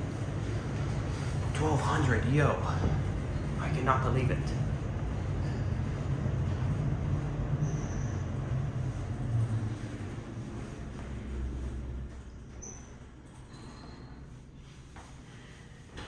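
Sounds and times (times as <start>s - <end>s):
elevator car rumbling: 0.0s - 14.8s.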